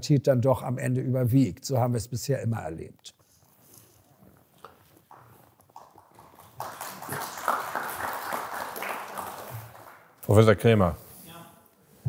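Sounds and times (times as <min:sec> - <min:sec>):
audience applauding: 0:05.1 - 0:10.4.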